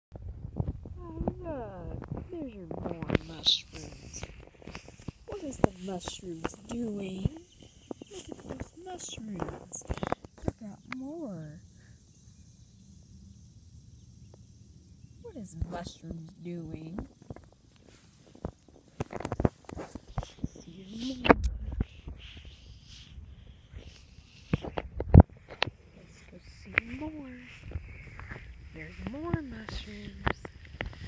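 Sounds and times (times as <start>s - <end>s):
insect chirping in even pulses: 3.2s - 24.8s
low rumble: 20.6s - 22.3s.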